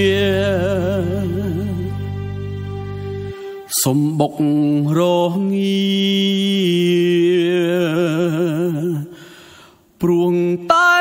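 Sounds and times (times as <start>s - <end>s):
man singing: 0.0s - 2.3s, 3.6s - 9.2s, 9.9s - 11.0s
backing music: 0.0s - 4.5s.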